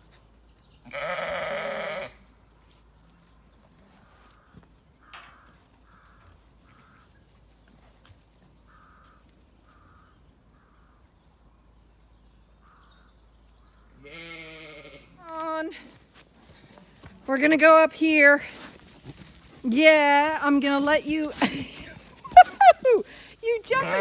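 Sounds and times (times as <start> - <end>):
sheep bleating: 0.8 - 2.2, 14.0 - 15.2, 23.6 - 24.0.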